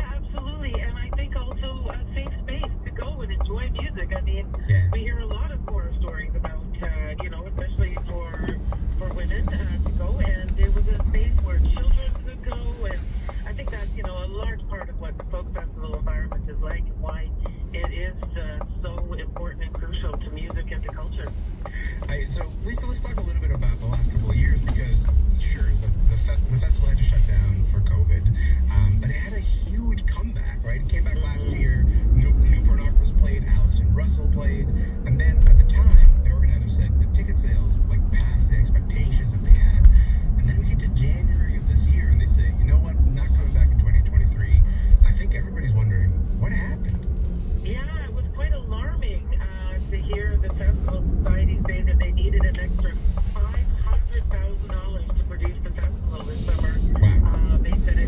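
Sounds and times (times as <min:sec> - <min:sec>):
talk radio voices: 0:00.0 - 0:47.0, 0:47.6 - 0:58.0
engine and tyre rumble: 0:00.0 - 0:58.0.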